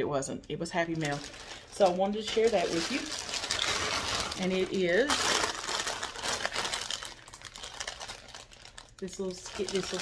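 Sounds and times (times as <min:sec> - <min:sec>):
plastic bag crinkling: 0:00.7 - 0:10.0.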